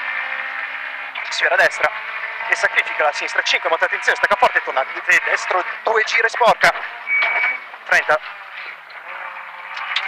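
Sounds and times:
rally car engine from cabin: 0.0 - 10.0.

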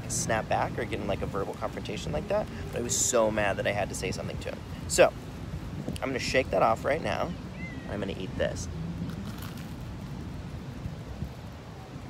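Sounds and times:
faint hiss: 0.0 - 12.0
low outdoor rumble: 0.0 - 12.0.

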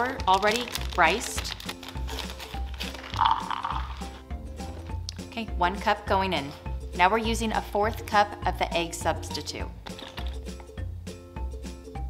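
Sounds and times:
small pieces rattling into a cup: 0.0 - 4.2, 9.9 - 10.4
background music: 0.0 - 12.0.

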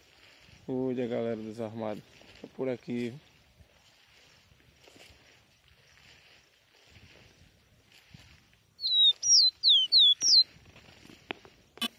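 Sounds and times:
bird whistling downward notes: 8.8 - 10.5.

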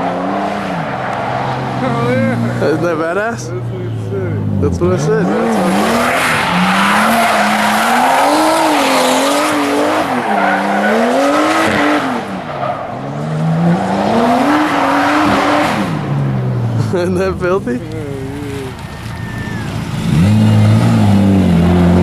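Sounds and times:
car engine revving: 0.0 - 22.0
tires squealing: 0.0 - 22.0.

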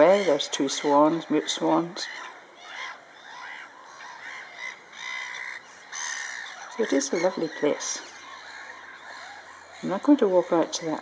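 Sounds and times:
woman's voice: 0.0 - 2.2, 6.8 - 8.1, 9.8 - 11.0
distant bird calls: 0.0 - 11.0.

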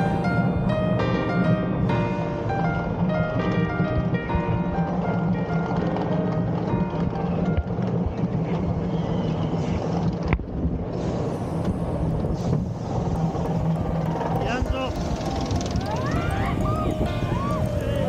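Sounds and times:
roller coaster running on track: 0.0 - 18.0
riders shrieking: 13.9 - 18.0.

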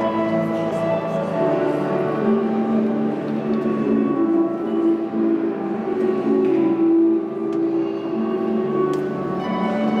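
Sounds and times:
harp music: 0.0 - 10.0.

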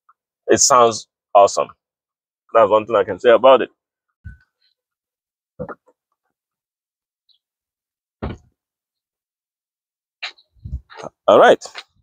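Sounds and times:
short thumps: 8.2 - 8.5.

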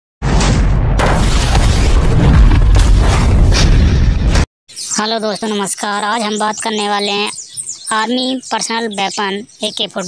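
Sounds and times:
sharp cracks: 0.2 - 4.4
deep rumbling boom: 0.2 - 4.5.

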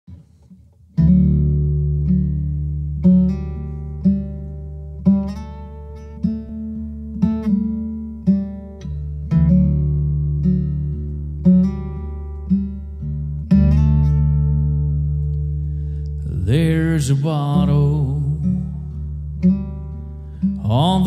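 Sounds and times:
acoustic guitar chords ringing: 0.9 - 21.0.

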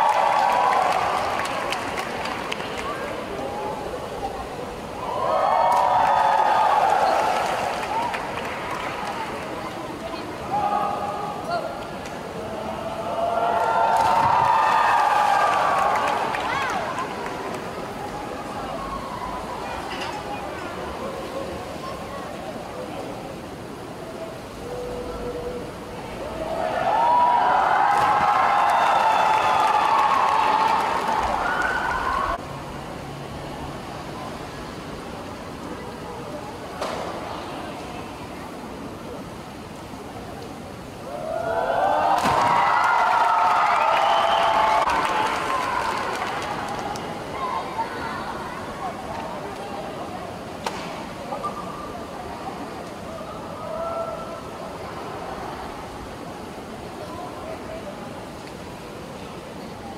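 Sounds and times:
spectators cheering and shouting: 0.0 - 9.5, 12.4 - 19.6, 26.1 - 32.4, 41.0 - 48.4
crowd hubbub: 0.0 - 59.9.

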